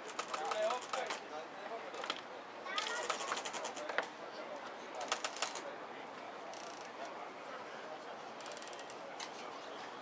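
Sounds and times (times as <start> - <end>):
market crowd murmur: 0.0 - 10.0.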